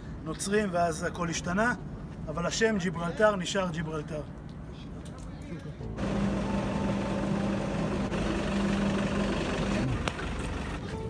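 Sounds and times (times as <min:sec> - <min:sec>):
engine hum: 0:05.8 - 0:11.0.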